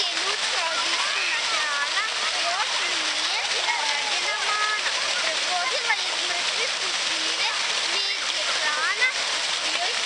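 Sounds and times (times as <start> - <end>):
child speaking: 0.0 - 10.0
fountain water splashing: 0.0 - 10.0.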